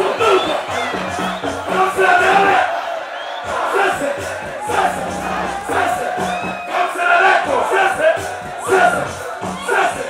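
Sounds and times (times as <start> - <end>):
performer's voice on microphone: 0.0 - 2.7
crowd shouting and cheering: 0.0 - 10.0
live concert music: 0.0 - 10.0.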